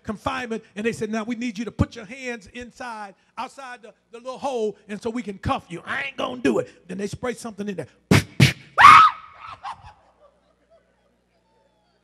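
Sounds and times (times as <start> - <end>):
man crying out in pain: 8.8 - 10.1.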